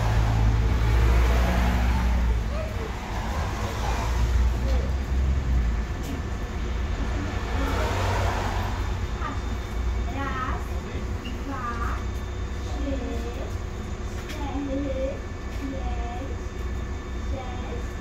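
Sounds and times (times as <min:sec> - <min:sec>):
people's voices: 0:00.0 - 0:16.5
bus engine idling: 0:00.0 - 0:18.0.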